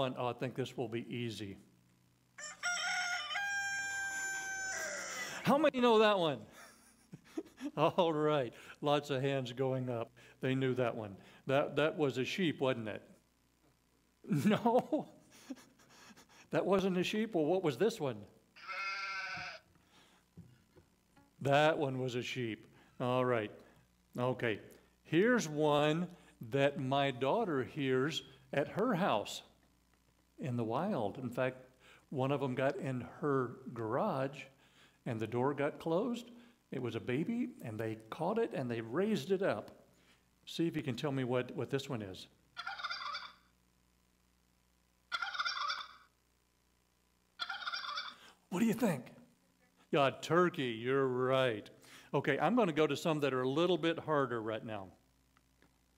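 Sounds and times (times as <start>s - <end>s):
turkey gobbling from phone: 2.4s - 5.4s, 18.6s - 19.7s, 42.6s - 43.5s, 45.1s - 46.2s, 47.4s - 48.3s
sheep bleating from phone: 18.6s - 19.7s.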